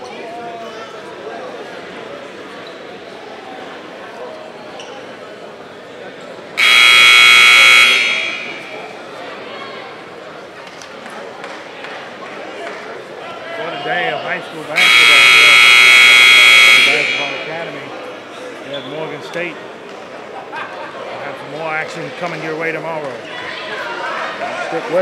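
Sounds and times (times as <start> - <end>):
murmur of voices: 0.0 - 25.0
scoreboard buzzer: 6.6 - 8.9, 14.8 - 17.7.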